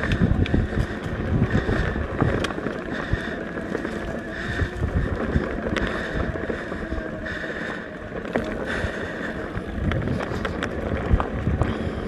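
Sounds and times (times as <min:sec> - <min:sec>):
tyres rumbling on dirt: 0:00.0 - 0:12.0
wind noise on microphone: 0:00.0 - 0:12.0.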